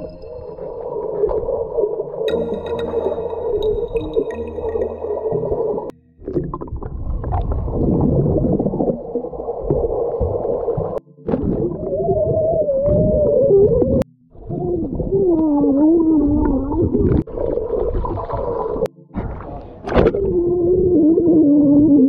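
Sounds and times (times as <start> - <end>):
underwater rumble and bubbles: 0.0 - 22.0
muffled voice underwater: 11.7 - 22.0.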